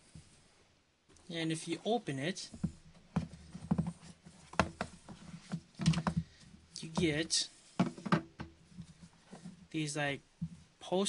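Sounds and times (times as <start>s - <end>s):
box knocking on wooden table: 7.8s - 8.6s.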